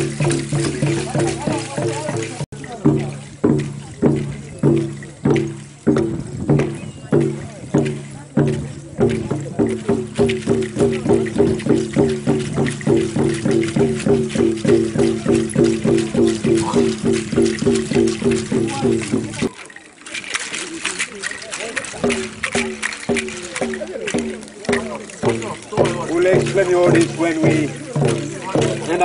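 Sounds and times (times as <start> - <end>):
drums beating: 0.0 - 29.0.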